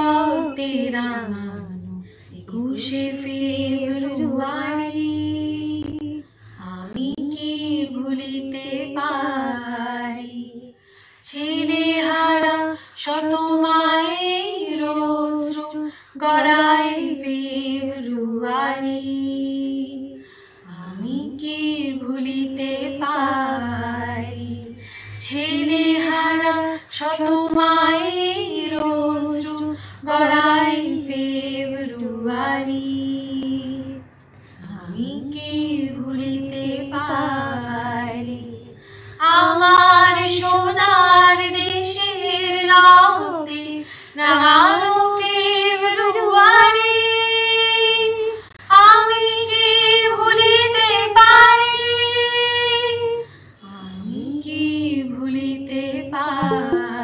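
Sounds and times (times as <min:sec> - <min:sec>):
women singing slow song: 0:00.0 - 0:57.0.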